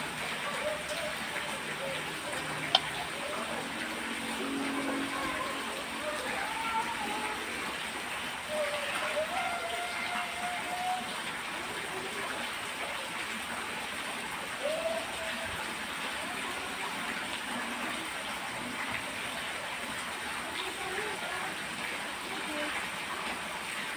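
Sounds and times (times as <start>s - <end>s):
person intoning long held notes: 0.6s - 7.9s.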